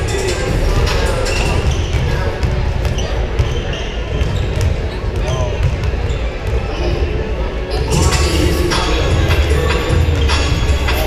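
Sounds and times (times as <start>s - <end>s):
crowd chatter: 0.0s - 11.0s
basketballs bouncing on hardwood: 1.6s - 6.6s.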